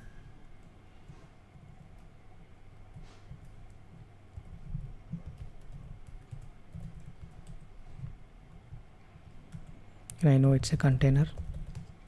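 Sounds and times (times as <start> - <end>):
computer keyboard typing: 3.3 - 7.7, 9.5 - 12.0.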